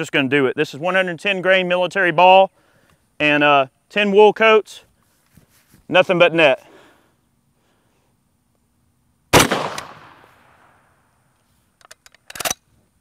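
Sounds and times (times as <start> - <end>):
rifle shot with echo: 9.3 - 10.9.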